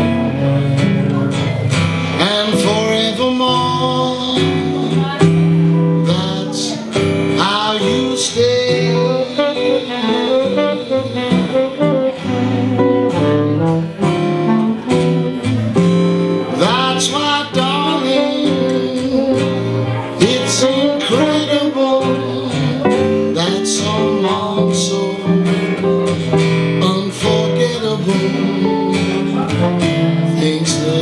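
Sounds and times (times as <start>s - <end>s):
guitar accompaniment: 0.0s - 31.0s
saxophone melody: 0.0s - 31.0s.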